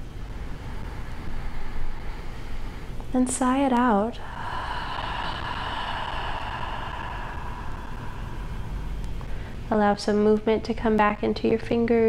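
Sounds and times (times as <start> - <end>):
long exhale through the mouth: 4.2 - 9.7.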